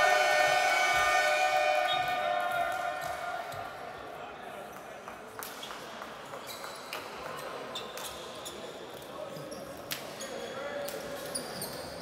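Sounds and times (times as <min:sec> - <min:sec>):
sneaker squeaks: 0:05.6 - 0:08.8, 0:09.4 - 0:12.0.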